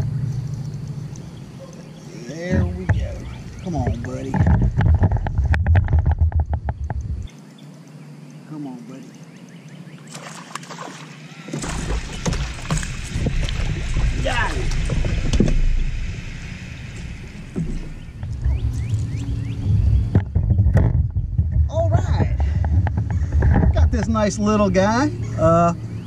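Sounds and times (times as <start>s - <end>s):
low rumbling on microphone: 0.0s - 7.3s, 11.6s - 26.0s
water splashing: 10.0s - 19.2s.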